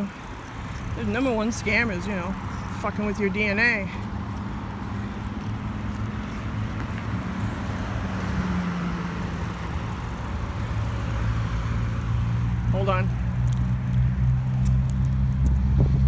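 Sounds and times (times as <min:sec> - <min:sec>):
cars driving past: 0:00.0 - 0:16.0.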